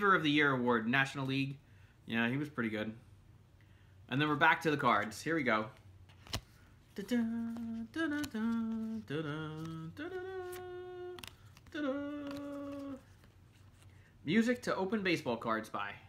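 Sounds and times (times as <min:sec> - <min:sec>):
man humming: 0:07.0 - 0:13.1.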